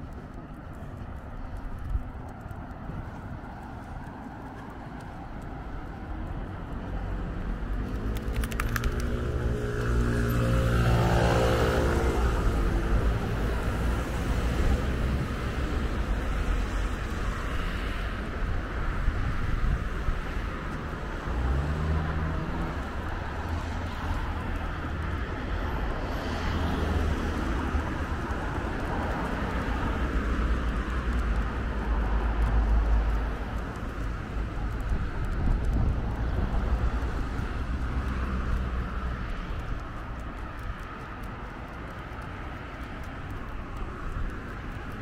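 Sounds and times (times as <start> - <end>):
traffic hum: 0.0 - 45.0
vehicle engine passing: 6.7 - 13.2.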